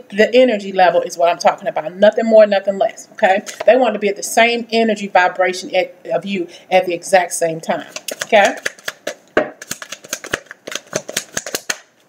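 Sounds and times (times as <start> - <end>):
cards being shuffled: 7.9 - 12.0.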